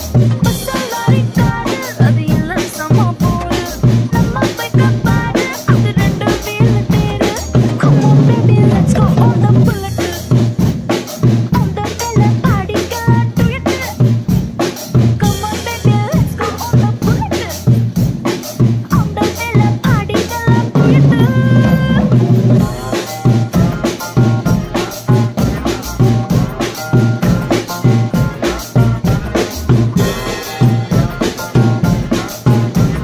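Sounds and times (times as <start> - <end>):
acoustic drum kit beat: 0.0 - 33.0
recorded song backing music: 0.0 - 33.0.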